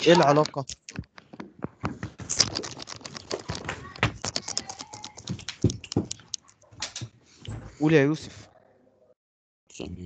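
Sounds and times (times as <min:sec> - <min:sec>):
computer keyboard typing: 0:00.0 - 0:01.4, 0:02.2 - 0:07.1.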